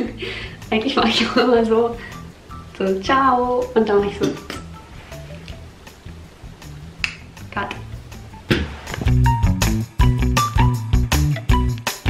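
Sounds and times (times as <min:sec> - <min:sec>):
quiet background music: 0:00.0 - 0:12.0
finger snap: 0:07.0 - 0:07.2.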